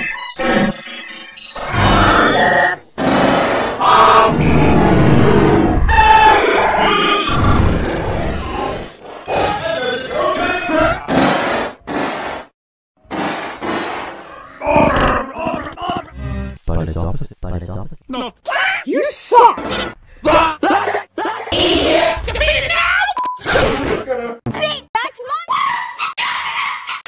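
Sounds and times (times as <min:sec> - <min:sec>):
harsh distorted scream: 0:01.6 - 0:11.2.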